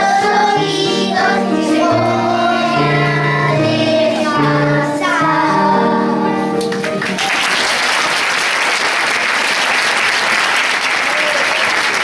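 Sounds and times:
children singing in unison: 0.0 - 6.4
instrumental accompaniment: 0.0 - 7.4.

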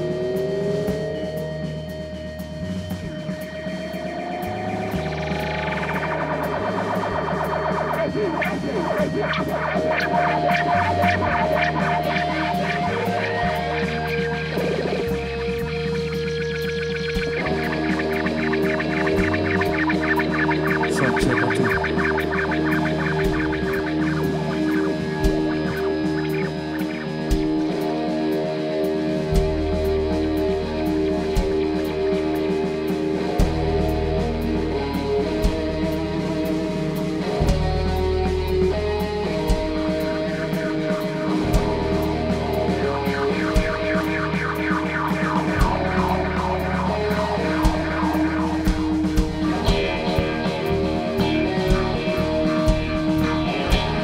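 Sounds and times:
bass line: 0.0 - 54.0
drums and cymbal beat: 0.0 - 54.0
electric guitar chords: 0.0 - 54.0.

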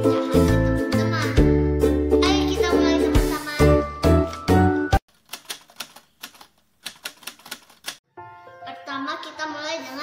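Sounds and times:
background music: 0.0 - 5.0, 8.1 - 10.0.

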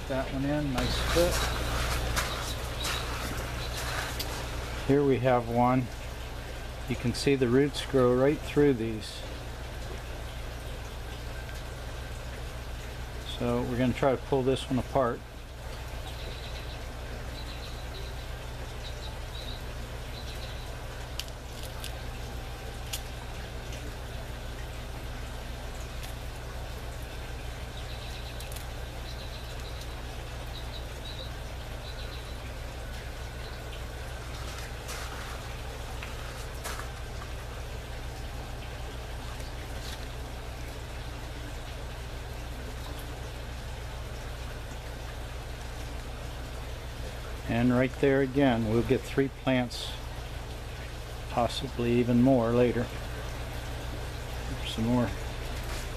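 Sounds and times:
small bird chirping: 16.0 - 20.8, 27.7 - 35.4.

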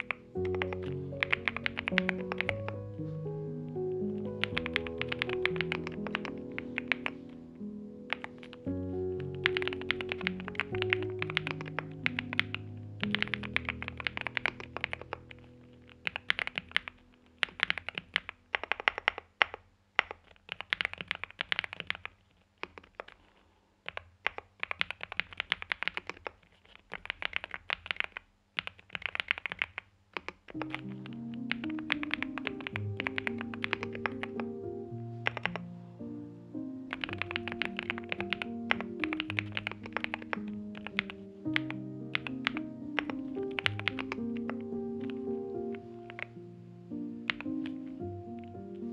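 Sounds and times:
typing on mechanical keyboard: 0.0 - 2.8, 4.3 - 7.2, 8.1 - 23.2, 23.8 - 34.6, 35.2 - 35.6, 36.9 - 46.3, 47.2 - 48.9
background music with low notes: 0.0 - 17.5, 30.6 - 48.9.

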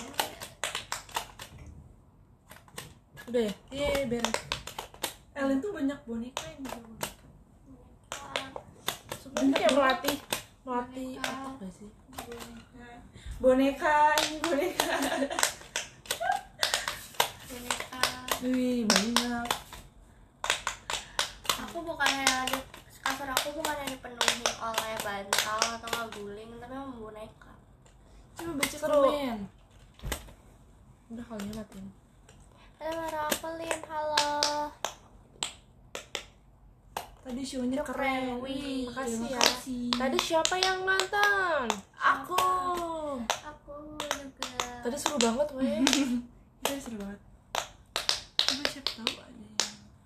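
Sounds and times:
woman talking: 3.2 - 4.5, 5.3 - 15.4, 17.4 - 19.7, 21.5 - 27.6, 28.4 - 29.6, 31.1 - 32.0, 37.2 - 47.3, 48.4 - 50.0
sharp claps: 14.1 - 19.8, 20.4 - 26.3, 32.9 - 36.2, 39.3 - 49.9.

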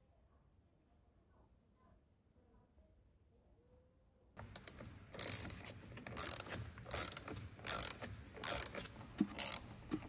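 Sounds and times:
ratchet wrench clicking: 4.4 - 10.0.

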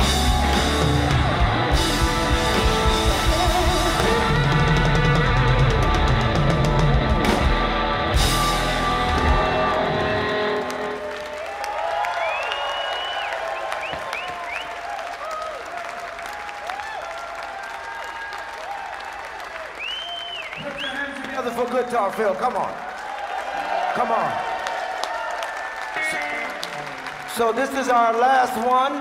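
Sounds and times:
live band playing: 0.0 - 11.4, 25.9 - 28.7
audience applause and cheering: 0.0 - 29.0.

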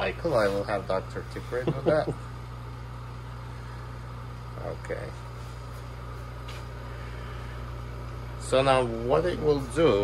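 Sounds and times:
vacuum pump humming: 0.0 - 10.0.

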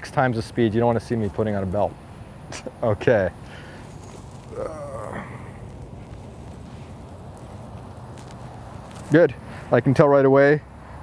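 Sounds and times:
low background hum: 0.0 - 11.0
man murmuring: 4.4 - 5.7.

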